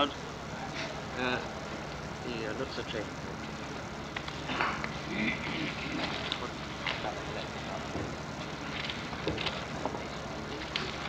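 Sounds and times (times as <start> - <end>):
faint indistinct voices: 0.0 - 11.0
recording hiss and hum: 0.0 - 11.0.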